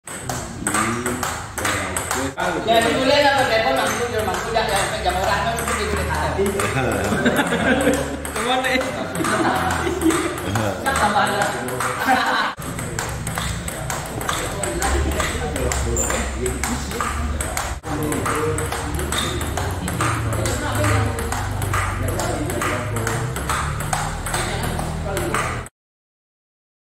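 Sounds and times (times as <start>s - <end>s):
table tennis ball clicking: 0.1s - 25.7s.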